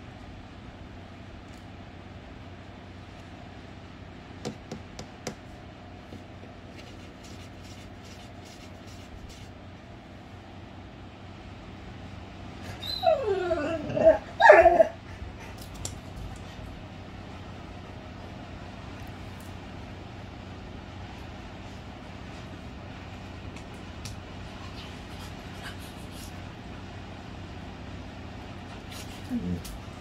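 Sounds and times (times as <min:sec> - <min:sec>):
dog crying: 0:12.6 - 0:15.2, 0:29.3 - 0:29.7.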